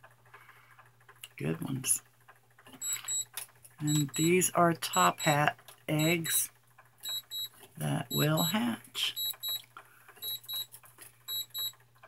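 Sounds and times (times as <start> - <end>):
electronic alarm short high beeps: 2.8 - 3.2, 7.0 - 7.5, 9.1 - 9.6, 10.2 - 10.7, 11.3 - 11.7.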